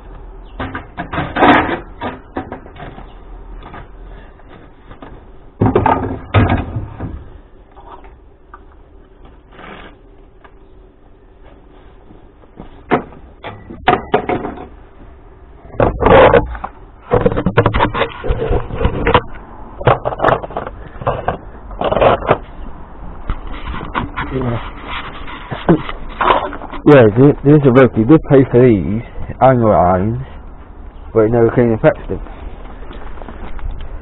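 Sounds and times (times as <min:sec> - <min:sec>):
scrap being moved knocks: 0:15.7 - 0:22.5.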